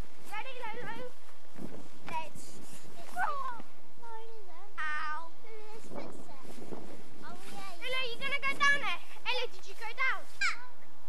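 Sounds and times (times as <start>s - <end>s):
children calling out: 10.2s - 10.8s
child squealing: 10.4s - 10.7s.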